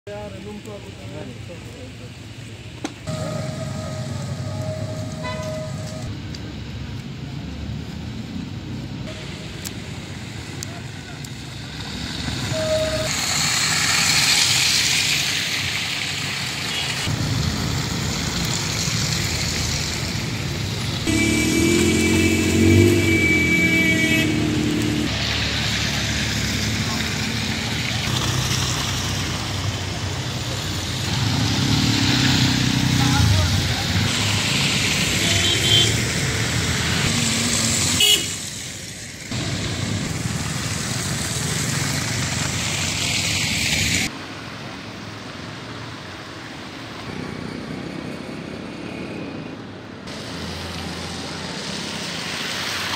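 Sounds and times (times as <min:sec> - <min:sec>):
vehicle horn: 0:03.1 - 0:06.1, 0:12.5 - 0:13.1, 0:21.1 - 0:25.1, 0:35.2 - 0:36.0, 0:38.0 - 0:38.4
car and motorcycle engines passing: 0:13.3 - 0:52.9.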